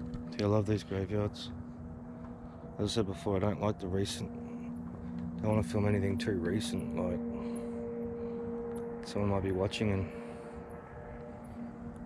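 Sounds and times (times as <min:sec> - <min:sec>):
distant road traffic rumble: 0:00.0 - 0:12.0
faint steady hum: 0:00.0 - 0:12.0.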